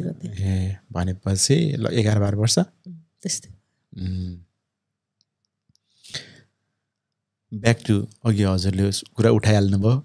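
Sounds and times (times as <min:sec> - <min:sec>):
person speaking: 0:00.0 - 0:04.4, 0:07.5 - 0:10.0.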